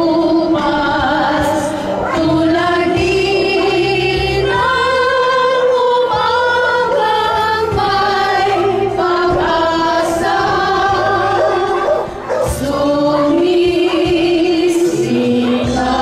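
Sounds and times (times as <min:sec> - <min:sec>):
woman singing into microphone: 0:00.0 - 0:16.0
women singing together: 0:00.0 - 0:16.0.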